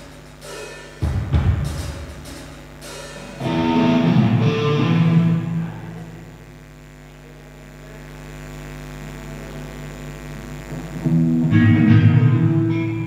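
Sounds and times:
amplifier hum: 0:01.0 - 0:13.0
rock band playing: 0:03.2 - 0:05.7, 0:11.5 - 0:13.0
held guitar chord ringing: 0:03.2 - 0:06.3, 0:11.4 - 0:13.0.

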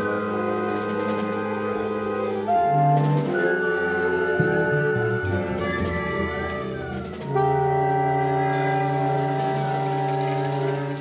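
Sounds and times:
jazz ensemble sustained chord: 0:00.0 - 0:11.0.

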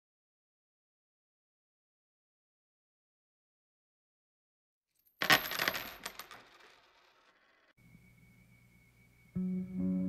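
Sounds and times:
coins clattering on hard surface: 0:05.1 - 0:07.7.

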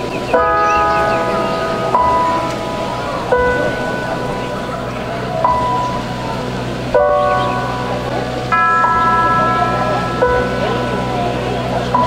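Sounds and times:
bells struck ringing: 0:00.0 - 0:12.0.

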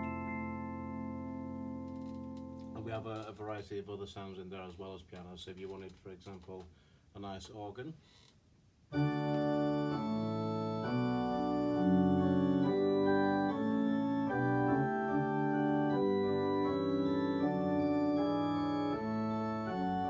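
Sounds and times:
sustained organ chords: 0:00.0 - 0:03.3, 0:08.9 - 0:20.0.

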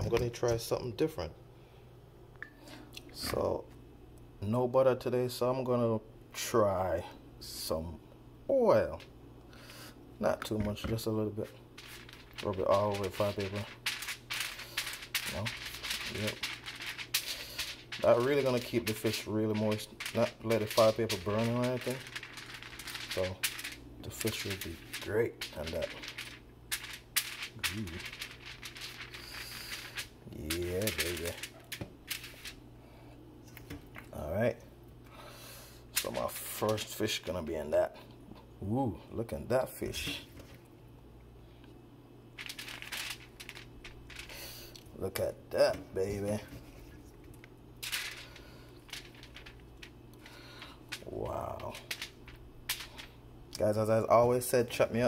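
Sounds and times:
aluminium foil crinkling: 0:11.7 - 0:32.6, 0:42.4 - 0:44.8, 0:46.1 - 0:53.2.

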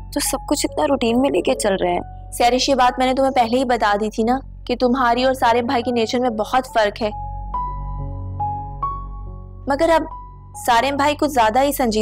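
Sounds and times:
low steady drone: 0:00.0 - 0:06.1
held music notes: 0:00.6 - 0:02.1.

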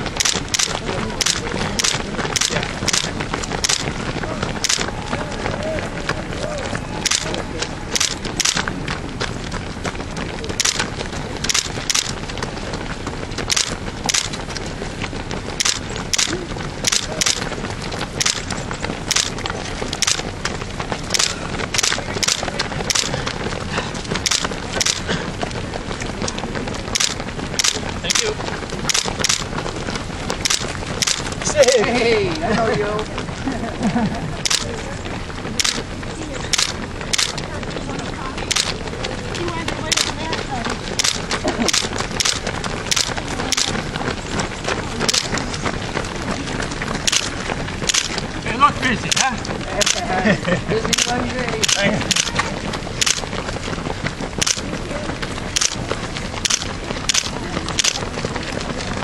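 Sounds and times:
faint voices: 0:00.0 - 0:59.0
running shoes striking asphalt: 0:00.0 - 0:59.0.

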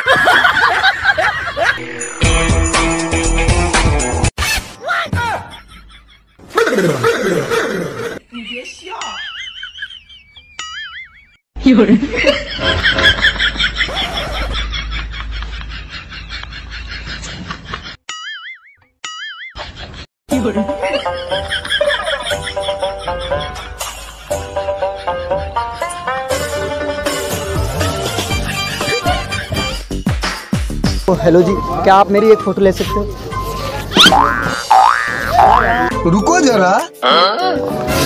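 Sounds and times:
background music: 0:01.8 - 0:05.5, 0:20.3 - 0:38.0
cartoon boing sound effect: 0:34.0 - 0:36.0.

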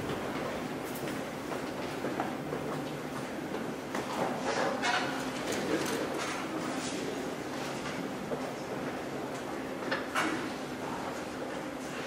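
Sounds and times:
room noise in a large hall: 0:00.0 - 0:12.0.

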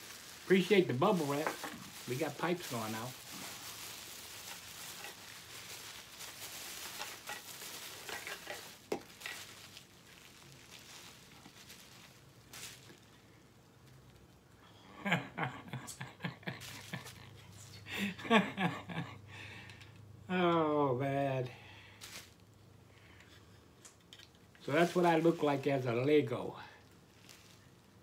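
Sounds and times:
bubble wrap crinkling: 0:00.0 - 0:14.5, 0:16.4 - 0:17.8, 0:22.0 - 0:22.6, 0:24.1 - 0:28.0.

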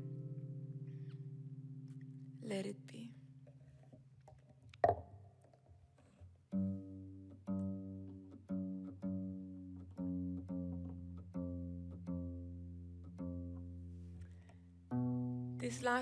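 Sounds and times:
kora strings plucked: 0:00.0 - 0:02.7, 0:03.4 - 0:05.2, 0:06.5 - 0:16.0.

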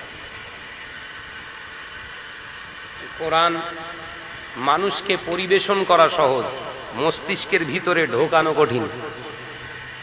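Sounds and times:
background hiss and room noise: 0:00.0 - 0:10.0.

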